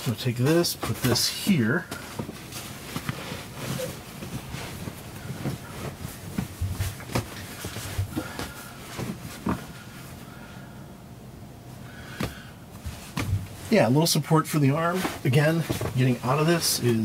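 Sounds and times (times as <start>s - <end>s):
rustling of clothes and upholstery: 0.0s - 10.6s, 11.8s - 17.0s
soft bumps on bench seat: 12.2s - 13.7s.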